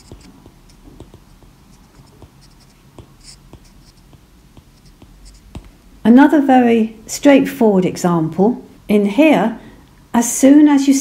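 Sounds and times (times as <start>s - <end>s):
stylus tapping and scratching on glass: 0.0s - 5.7s.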